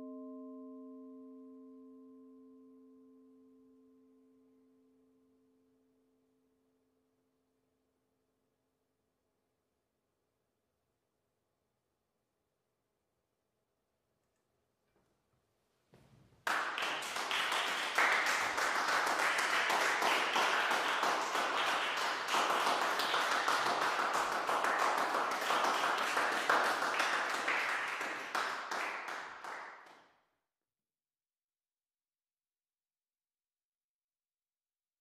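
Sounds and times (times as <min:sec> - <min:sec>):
applause: 0:16.4 - 0:30.1.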